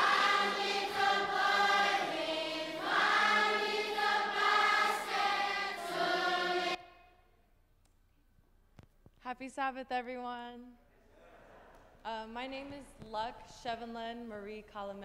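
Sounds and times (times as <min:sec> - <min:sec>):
children singing in unison: 0:00.0 - 0:07.0.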